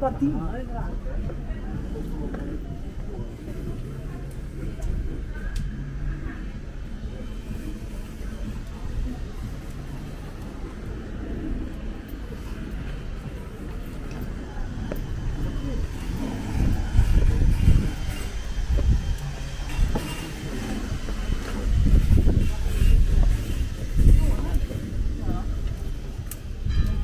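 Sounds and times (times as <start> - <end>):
indistinct voices: 0.0 - 27.0
wind buffeting microphone: 0.0 - 27.0.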